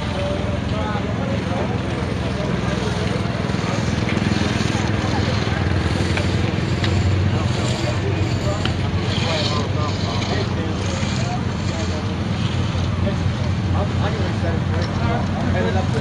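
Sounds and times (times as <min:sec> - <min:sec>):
people chattering: 0:00.0 - 0:16.0
small engine running: 0:00.0 - 0:16.0.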